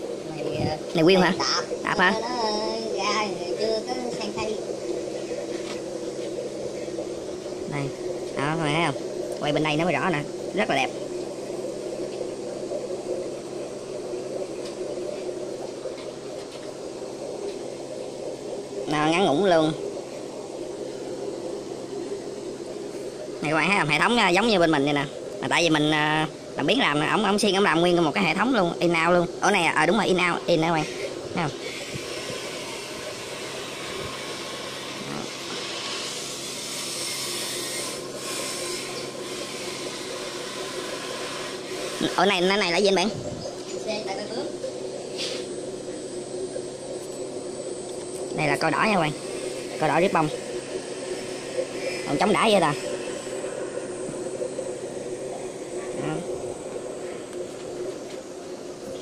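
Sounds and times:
air lines bubbling: 0.0s - 59.0s
water running through pipes: 0.0s - 59.0s.

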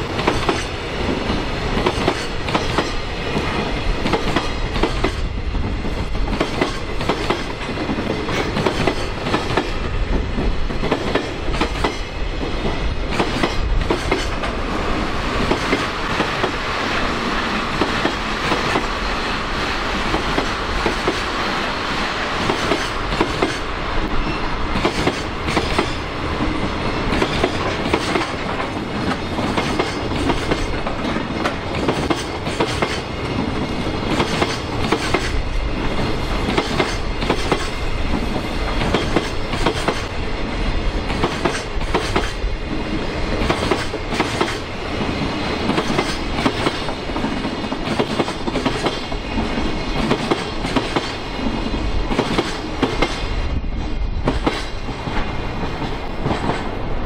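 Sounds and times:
train wheels clicking over rail joints: 0.1s - 14.7s, 15.4s - 21.6s, 22.4s - 40.2s, 41.0s - 56.8s.

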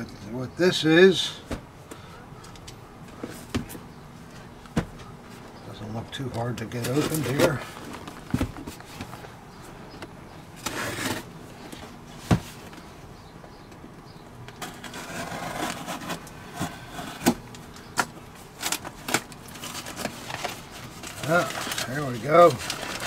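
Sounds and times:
blade cutting packing tape: 14.6s - 17.4s.

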